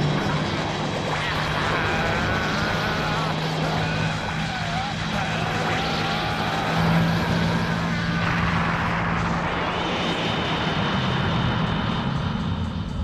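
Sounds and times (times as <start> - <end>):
droning roar with low hum: 0.0 - 13.0.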